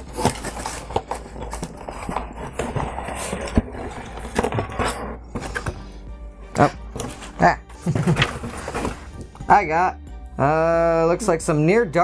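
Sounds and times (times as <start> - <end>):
paper packaging rustling: 0.0 - 5.9, 6.9 - 9.4
cardboard lid scraping: 0.0 - 6.0, 6.9 - 9.4.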